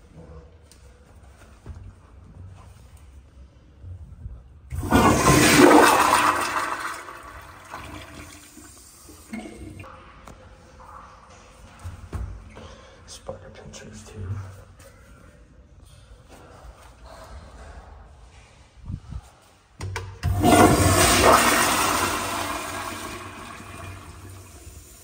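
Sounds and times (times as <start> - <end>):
toilet flushing: 4.7 - 9.9, 20.2 - 25.0.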